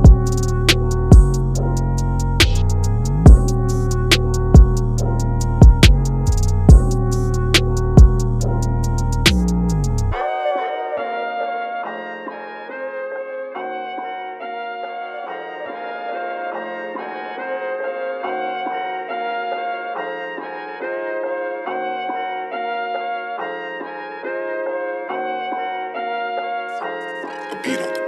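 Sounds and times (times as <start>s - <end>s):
brass chords: 0.0s - 11.7s.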